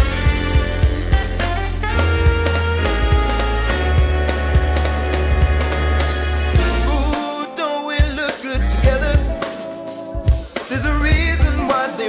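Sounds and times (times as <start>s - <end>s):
brass band music: 0.0s - 12.0s.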